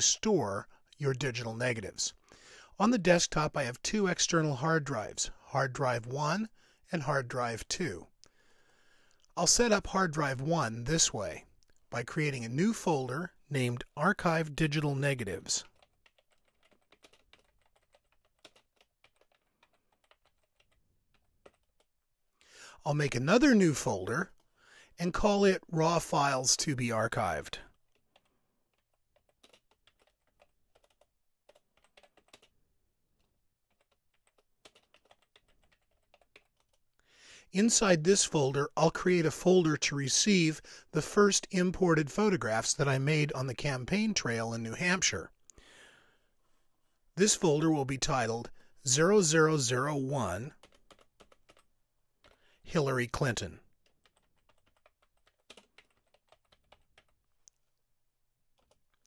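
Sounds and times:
faint keyboard typing: 13.0s - 22.6s, 27.2s - 37.2s, 49.8s - 57.9s, 58.5s - 59.0s.

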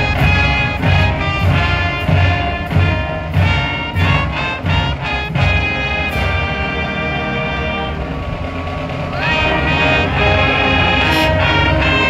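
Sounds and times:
brass band sustained chord: 0.0s - 12.0s.

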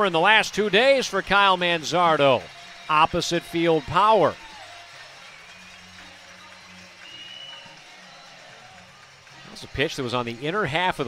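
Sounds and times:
faint music with low notes: 0.0s - 11.0s.

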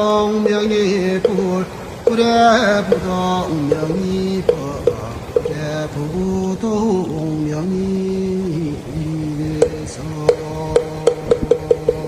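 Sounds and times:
wooden fish knocks: 0.0s - 5.9s, 9.6s - 12.0s.

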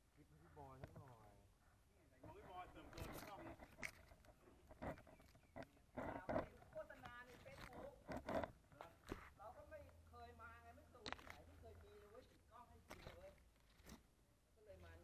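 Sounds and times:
sharp knocks and clicks: 2.2s - 8.6s.

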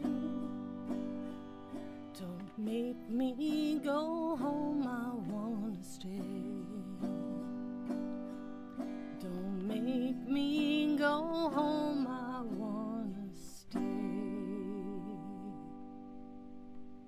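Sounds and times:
guitar chords: 0.0s - 17.0s.

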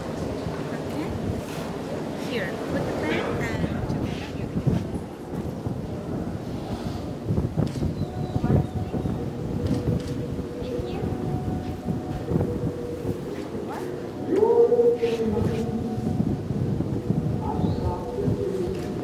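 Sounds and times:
faint murmured voices: 0.0s - 19.0s
wind buffeting microphone: 0.0s - 19.0s.

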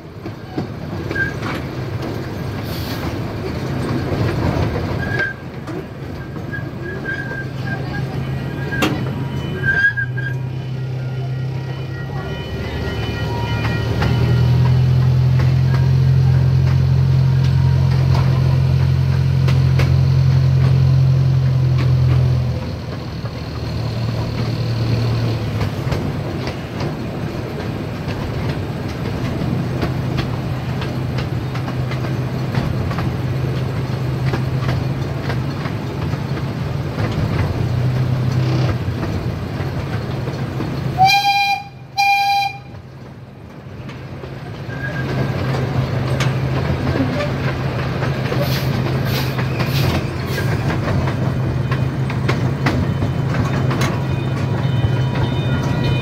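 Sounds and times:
track clatter: 0.0s - 56.0s
train horn toots: 41.0s - 42.8s, 54.1s - 56.0s.

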